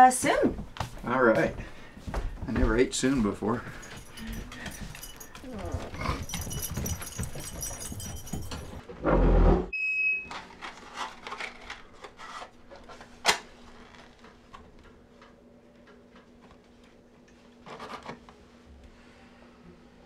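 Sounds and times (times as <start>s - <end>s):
rustling and clattering handling: 0.8s - 8.9s.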